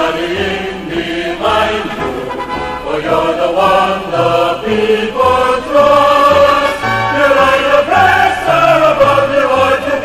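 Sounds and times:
choir singing: 0:00.0 - 0:10.0
instrumental backing: 0:00.4 - 0:08.3.

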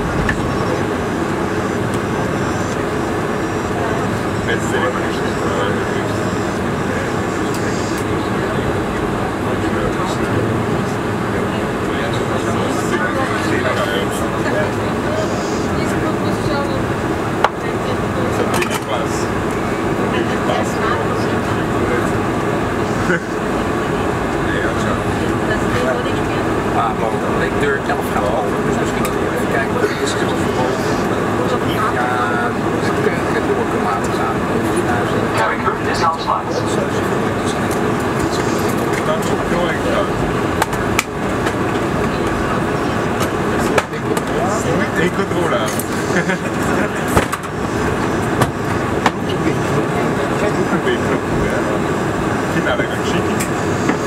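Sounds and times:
airliner cabin noise: 0:00.0 - 0:54.0
engine and air-conditioning rumble: 0:00.0 - 0:54.0
passengers talking indistinctly: 0:00.0 - 0:54.0.

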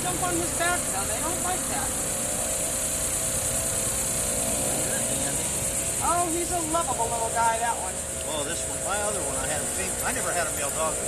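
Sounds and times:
high-pitched hiss: 0:00.0 - 0:11.0.

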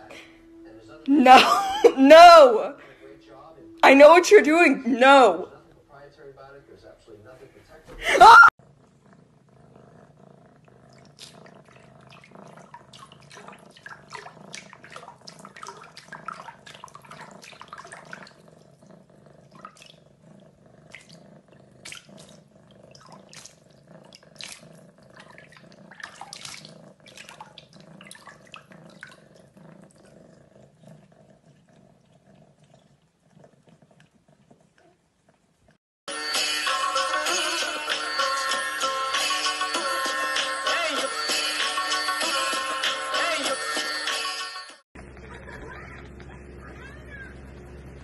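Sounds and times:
cat splashing water in sink: 0:11.0 - 0:18.4, 0:19.6 - 0:20.0, 0:21.8 - 0:29.3
low room hum: 0:45.0 - 0:48.0.

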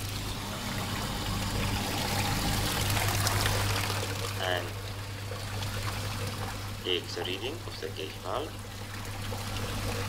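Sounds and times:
pump humming: 0:00.0 - 0:10.0
water pouring and splashing into tank: 0:00.0 - 0:10.0.

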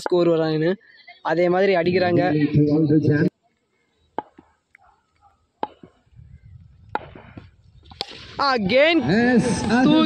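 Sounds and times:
cricket bat hitting ball: 0:04.2 - 0:04.5, 0:05.6 - 0:05.9, 0:06.9 - 0:08.2
wind rumble on microphone: 0:06.1 - 0:08.4.

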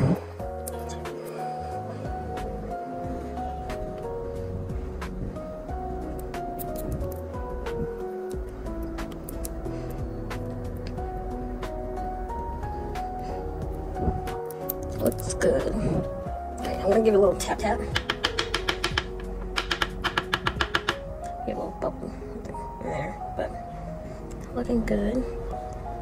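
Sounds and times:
light ticking beat: 0:02.0 - 0:21.4
voice: 0:15.0 - 0:16.0, 0:16.6 - 0:17.8, 0:24.6 - 0:25.3.

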